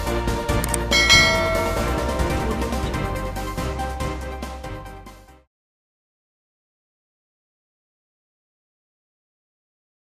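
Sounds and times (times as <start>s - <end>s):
background music: 0.0s - 5.5s
bright bell chime: 0.7s - 3.3s.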